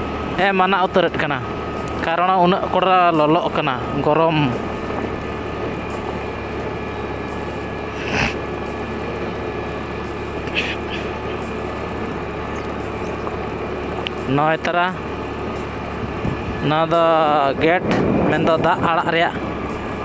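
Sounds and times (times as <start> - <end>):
motorcycle engine running: 0.0 - 20.0
road noise: 0.0 - 20.0.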